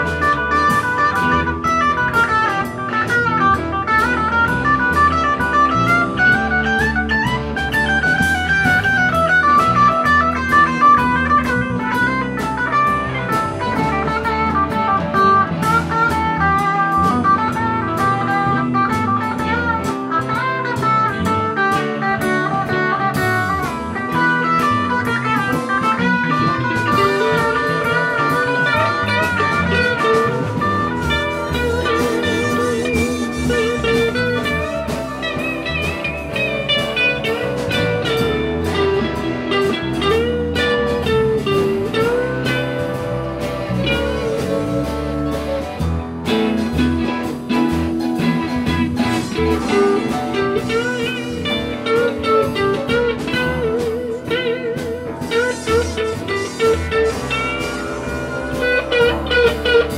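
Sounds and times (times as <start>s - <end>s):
electric guitar lead lines: 0.0s - 59.9s
live electric band playing: 0.0s - 59.9s.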